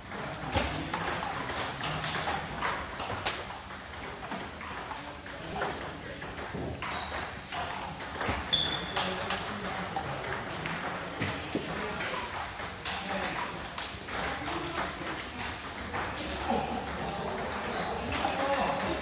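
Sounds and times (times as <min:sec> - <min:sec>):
table tennis ball hits: 0:00.0 - 0:19.0.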